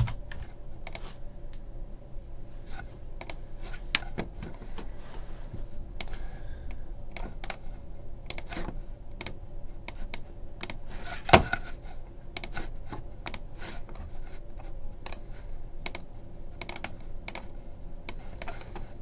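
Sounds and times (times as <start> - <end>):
computer keyboard typing: 0.8 - 1.0, 3.2 - 3.4, 7.1 - 7.6, 8.3 - 8.6, 9.2 - 10.8, 12.4 - 12.6, 13.2 - 13.5, 15.8 - 17.5.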